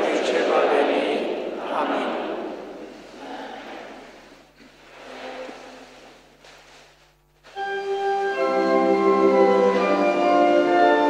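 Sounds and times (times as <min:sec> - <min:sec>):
person speaking in echoing hall: 0:00.0 - 0:06.4
soft congregation noise: 0:00.0 - 0:11.0
church organ chords: 0:07.5 - 0:11.0.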